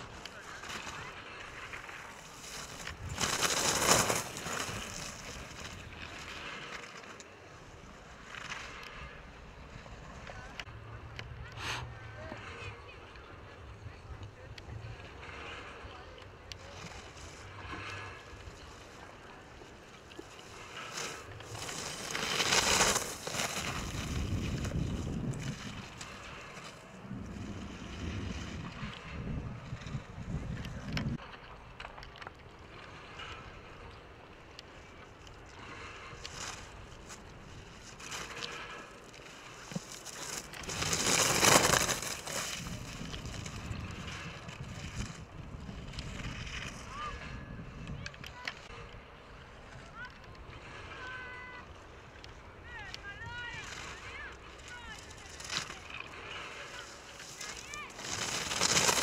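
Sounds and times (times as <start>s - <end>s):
skis scraping across hard snow: 0.0s - 10.6s, 14.4s - 31.5s, 32.1s - 48.8s, 50.6s - 59.0s.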